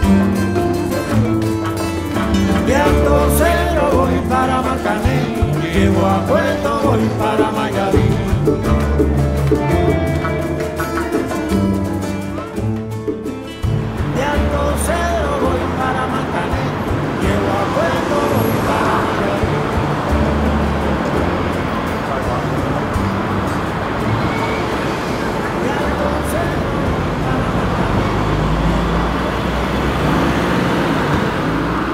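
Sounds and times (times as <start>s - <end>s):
background music: 0.0s - 31.9s
city street traffic: 0.0s - 31.9s
indistinct voices: 0.0s - 31.9s.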